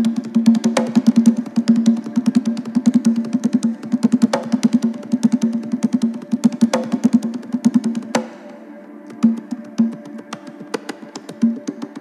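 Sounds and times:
hand drum low open tones: 0.0 - 12.0.

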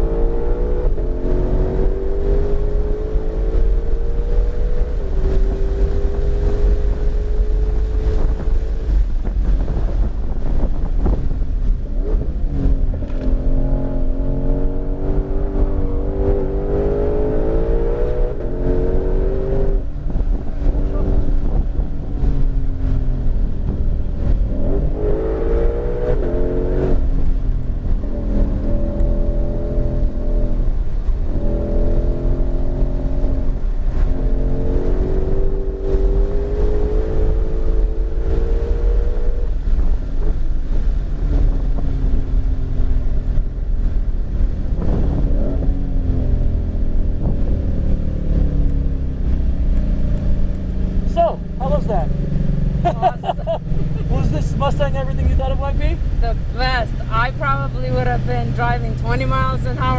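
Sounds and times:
car engine revving in cabin: 0.0 - 59.9
road and wind noise: 0.0 - 59.9.

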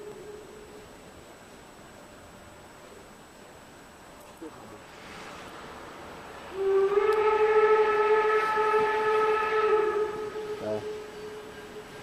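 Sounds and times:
steam locomotive whistle: 6.5 - 12.0.

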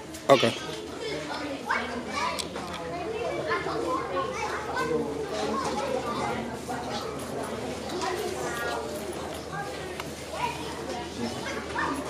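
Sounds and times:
children talking and calling out: 0.0 - 12.0.

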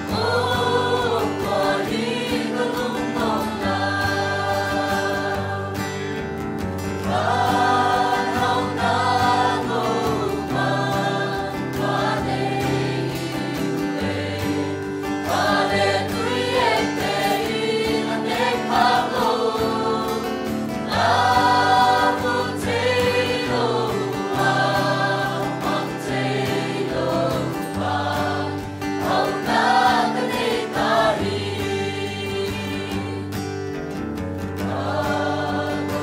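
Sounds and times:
church choir singing a hymn: 0.0 - 33.5, 34.4 - 36.0.

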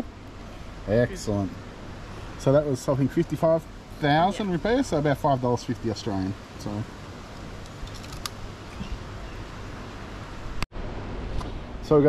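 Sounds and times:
faint steady hiss: 0.0 - 12.0.

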